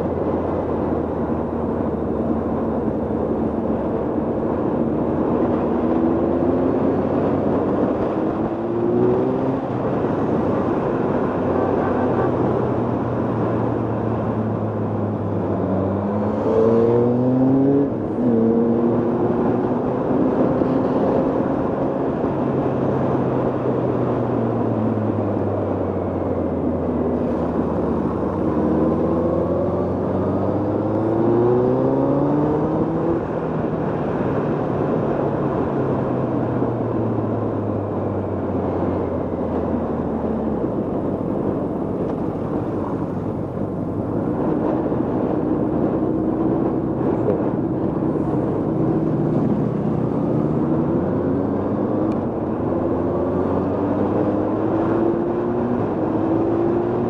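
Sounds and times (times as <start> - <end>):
wind and road noise: 0.0 - 57.0.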